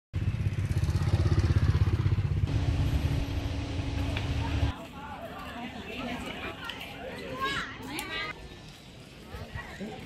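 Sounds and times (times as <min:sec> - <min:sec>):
vehicle engine pulsing rumble: 0:00.2 - 0:04.7
steady hum: 0:02.4 - 0:04.7.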